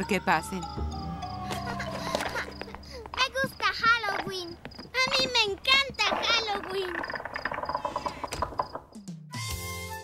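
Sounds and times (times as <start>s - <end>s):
crickets chirping: 0.0s - 9.1s.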